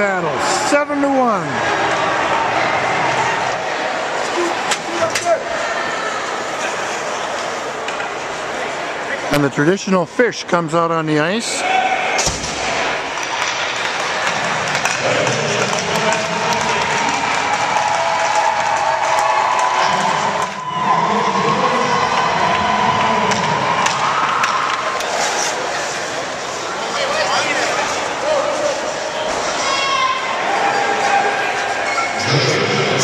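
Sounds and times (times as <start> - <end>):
arena crowd chattering and cheering: 0.0 - 33.0.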